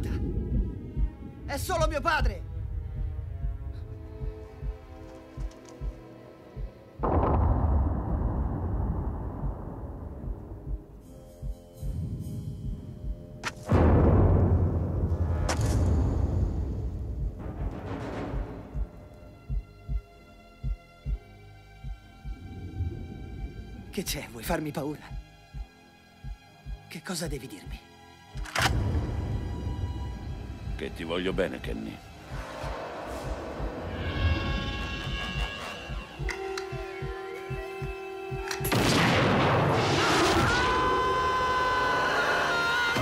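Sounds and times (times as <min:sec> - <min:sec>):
heartbeat thumps: 0:00.0 - 0:27.8, 0:29.8 - 0:38.9
man screaming: 0:40.1 - 0:43.0.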